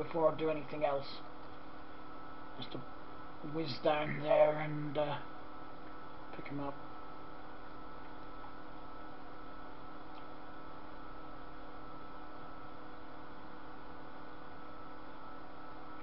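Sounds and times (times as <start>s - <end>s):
low electrical hum: 0.0s - 16.0s
faint click: 10.1s - 10.3s.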